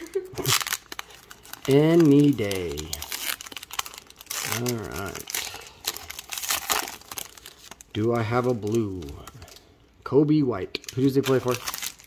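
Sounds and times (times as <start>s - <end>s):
foil wrapper crinkling: 0.0s - 9.7s, 10.8s - 12.0s
person speaking: 1.4s - 11.9s.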